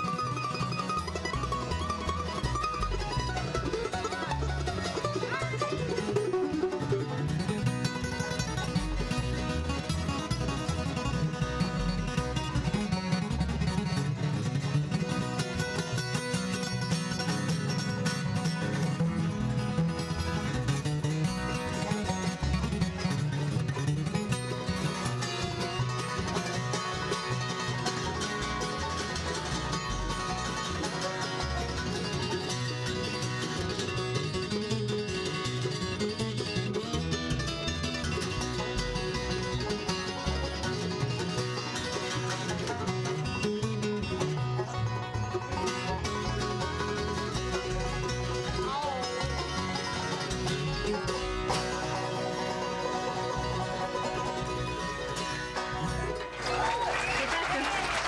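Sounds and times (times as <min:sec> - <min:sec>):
acoustic guitars: 0:00.0 - 0:58.0
banjo: 0:00.0 - 0:58.0
mandolin: 0:00.0 - 0:58.0
upright bass: 0:00.0 - 0:58.0.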